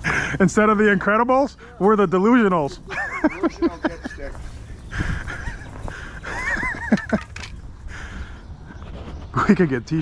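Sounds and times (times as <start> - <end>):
man laughing: 2.6 - 7.4.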